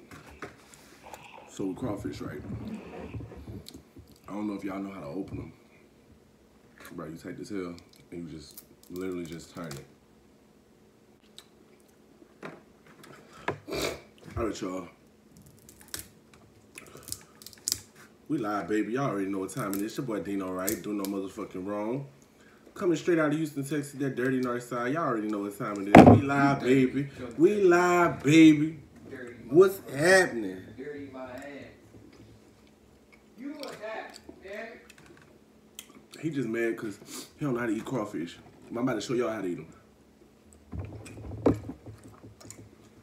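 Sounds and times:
crawfish shells cracking: 0:15.4 - 0:18.0.

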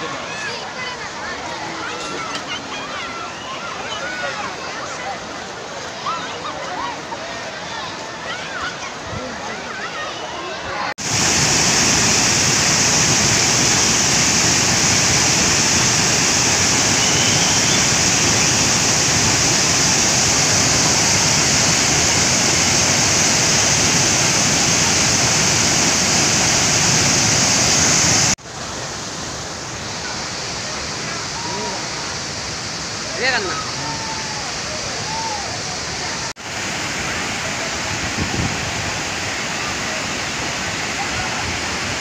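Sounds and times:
water pouring over rocks: 0:11.0 - 0:28.4.

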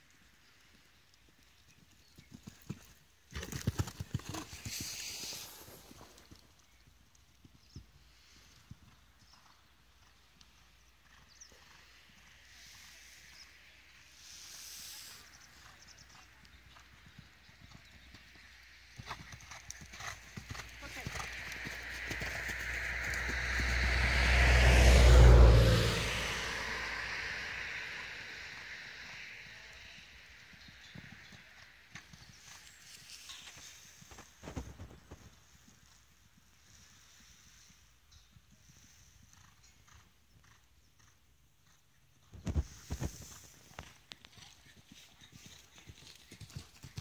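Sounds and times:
horse hooves cantering: 0:00.6 - 0:07.9, 0:15.6 - 0:24.0, 0:39.4 - 0:47.0
rushing noise: 0:21.1 - 0:29.8.

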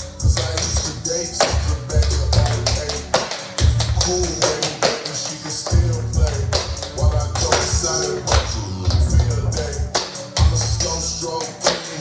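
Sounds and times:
hip-hop track with deep bass: 0:00.0 - 0:12.0.

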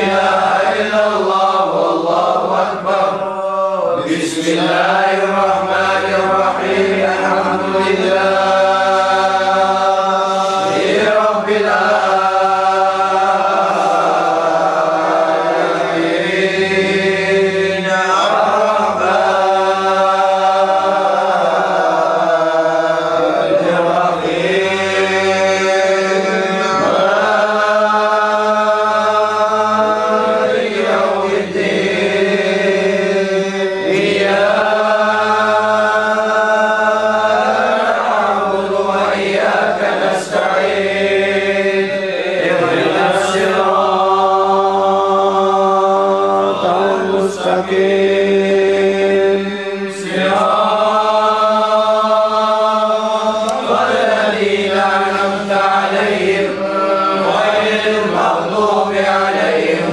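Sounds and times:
men chanting together: 0:00.0 - 0:59.9.

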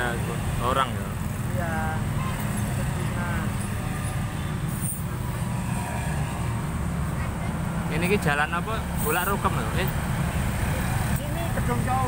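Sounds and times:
low traffic rumble: 0:00.0 - 0:12.0
motorcycle engines passing: 0:00.0 - 0:12.0.

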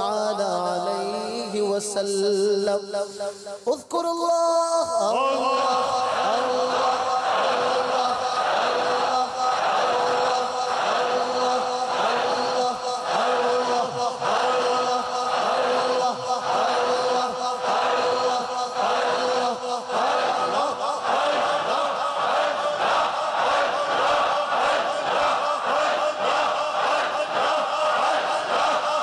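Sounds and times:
men chanting in unison: 0:04.8 - 0:29.0.

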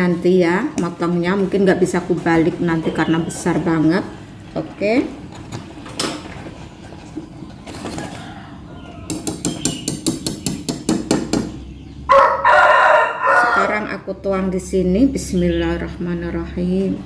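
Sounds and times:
rooster crowing: 0:07.9 - 0:09.2, 0:12.1 - 0:13.9.

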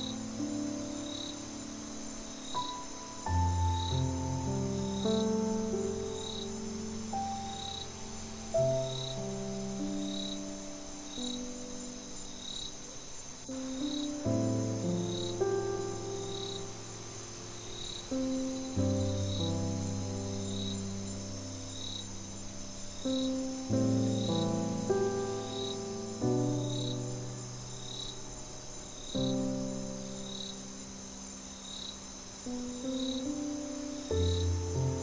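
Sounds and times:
crickets chirping: 0:00.0 - 0:35.0
soft piano chords: 0:00.0 - 0:35.0.

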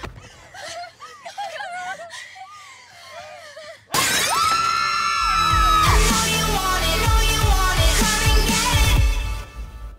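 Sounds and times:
long held scream: 0:04.1 - 0:06.1
music with heavy thumping beat: 0:05.5 - 0:09.3.

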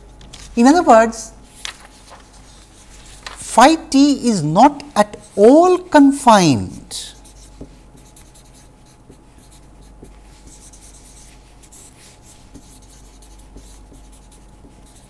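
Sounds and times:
steady low hum: 0:00.0 - 0:15.0
marker scratching on paper: 0:00.4 - 0:05.8, 0:06.8 - 0:15.0.

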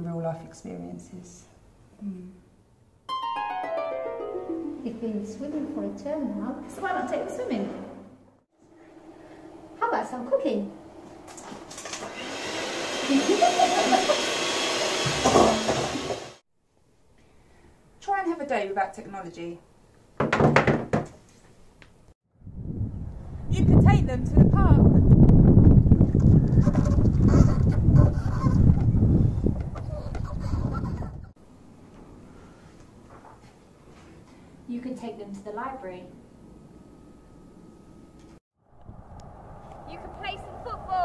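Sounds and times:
electric hand mixer whirring: 0:11.7 - 0:16.4
wind buffeting microphone: 0:22.4 - 0:31.4, 0:38.7 - 0:41.0
faint higher calls: 0:38.7 - 0:41.0.

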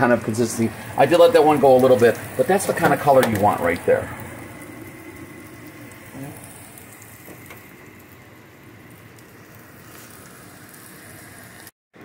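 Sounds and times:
meat sizzling in oil: 0:00.0 - 0:11.7.

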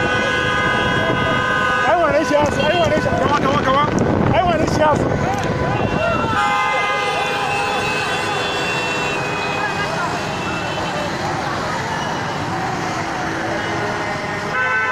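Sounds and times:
vehicle horns blasting: 0:00.0 - 0:03.4, 0:05.0 - 0:11.2, 0:13.6 - 0:14.9
traffic noise: 0:00.0 - 0:14.9.

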